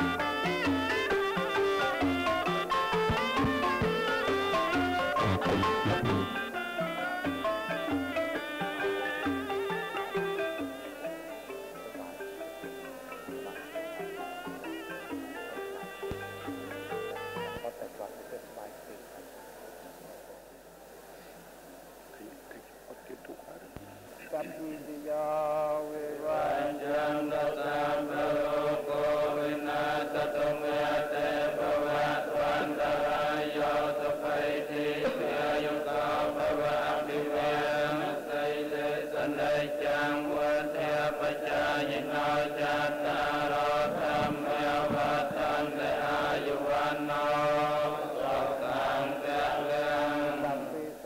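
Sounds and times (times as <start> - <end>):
monks chanting in unison: 0.0 - 20.4, 23.0 - 51.0.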